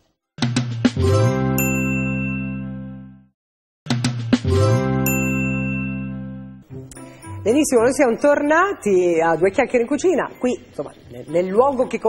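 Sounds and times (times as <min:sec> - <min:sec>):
ringing chord jingle: 0:04.5 - 0:07.5.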